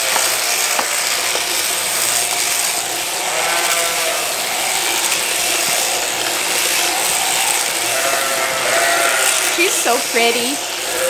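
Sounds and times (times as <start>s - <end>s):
electric clippers buzzing: 0.0s - 11.0s
sheep bleating: 2.0s - 11.0s.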